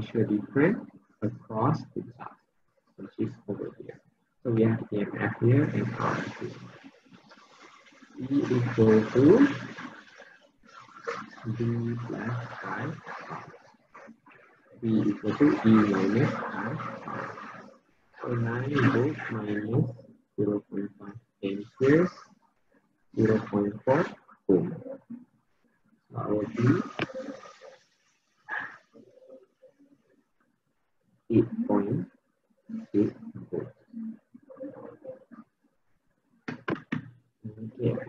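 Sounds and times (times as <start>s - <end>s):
man saying a word: 0.0s - 2.2s, 3.0s - 3.8s, 4.5s - 6.6s, 8.2s - 9.6s, 11.5s - 12.9s, 14.8s - 16.8s, 18.2s - 22.2s, 23.2s - 24.8s, 26.2s - 27.0s, 31.3s - 32.0s, 32.8s - 33.7s, 37.4s - 38.0s
man making indistinct speech sounds: 0.0s - 2.4s, 3.0s - 3.9s, 4.5s - 6.6s, 8.2s - 9.6s, 11.4s - 13.0s, 14.8s - 17.1s, 18.2s - 22.2s, 23.2s - 25.0s, 26.2s - 27.3s, 31.3s - 32.1s, 32.7s - 33.8s, 37.4s - 38.0s
low background noise: 0.0s - 38.0s.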